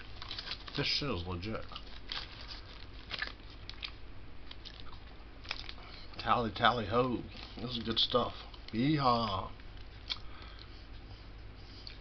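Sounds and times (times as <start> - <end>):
plastic package crackling: 0.0 - 5.8.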